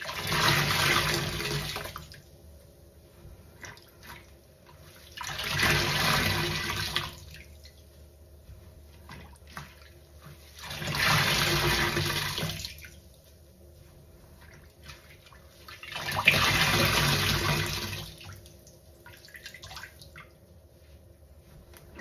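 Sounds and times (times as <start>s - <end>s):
wet sponge squelching: 8.4s - 17.9s.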